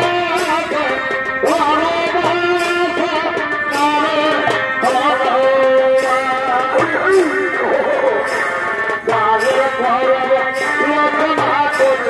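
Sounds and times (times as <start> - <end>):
drum beats: 0.0 - 12.0
shehnai melody: 0.0 - 12.0.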